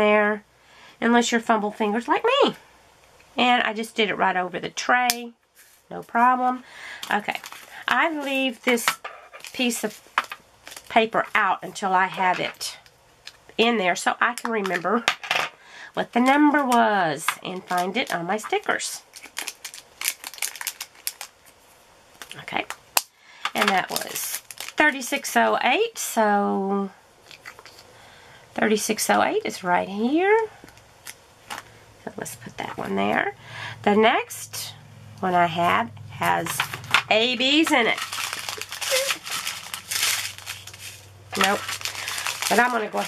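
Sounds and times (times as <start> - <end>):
plastic bag crinkling and clicking: 7.0 - 11.4, 16.6 - 18.2, 19.1 - 21.6, 23.5 - 24.8, 36.4 - 43.0.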